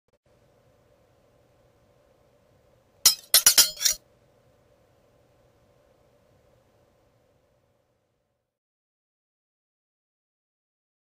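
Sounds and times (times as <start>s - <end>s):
sharp metallic clinking: 3.1s - 4.0s.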